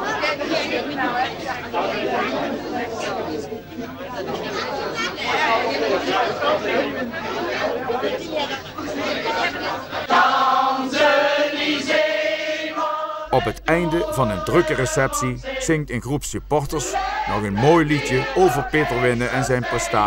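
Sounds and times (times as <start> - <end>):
crowd chatter: 0.0 - 20.0
group singing held notes: 5.2 - 20.0.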